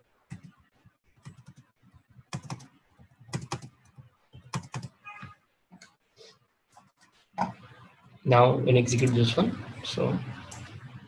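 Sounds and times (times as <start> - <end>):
computer keyboard typing: 2.3 - 2.7, 3.3 - 5.0.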